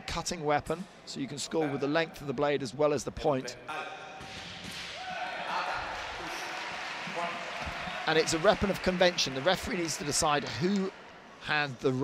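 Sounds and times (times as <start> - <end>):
arena crowd noise: 4.8 - 12.0.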